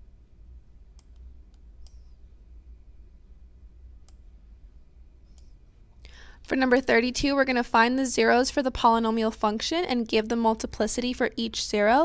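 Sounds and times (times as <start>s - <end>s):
low steady hum: 0.0s - 12.0s
computer mouse clicks: 0.9s - 2.2s, 4.0s - 4.2s, 5.2s - 5.6s.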